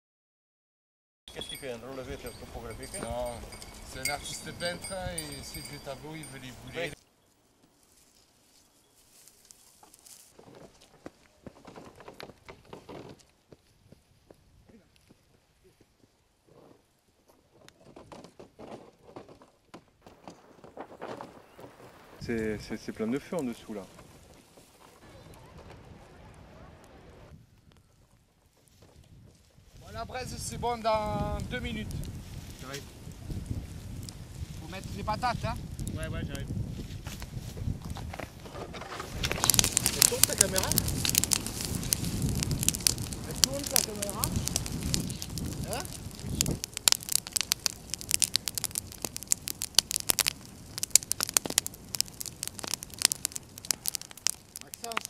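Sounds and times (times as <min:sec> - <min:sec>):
bonfire crackling and popping: 0:01.3 - 0:16.2, 0:17.7 - 0:55.0
faint outdoor rumble: 0:20.1 - 0:30.4.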